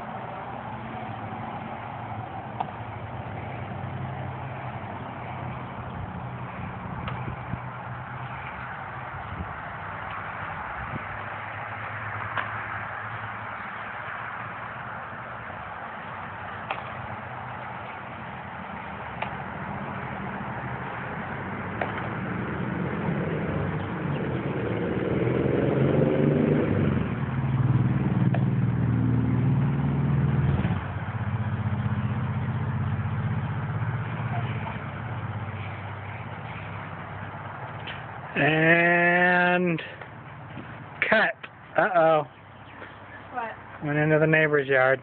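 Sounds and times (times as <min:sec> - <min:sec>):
engine humming: 0:00.0 - 0:45.0
baseball smacking into glove: 0:16.7 - 0:17.0.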